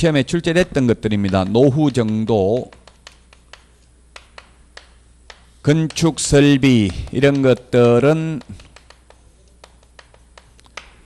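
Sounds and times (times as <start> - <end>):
chalk tapping on a blackboard: 0.6 - 11.0.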